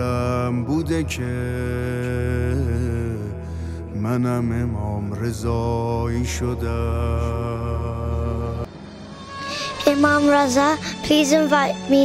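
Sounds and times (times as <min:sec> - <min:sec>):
low drone: 0:00.0 - 0:11.9.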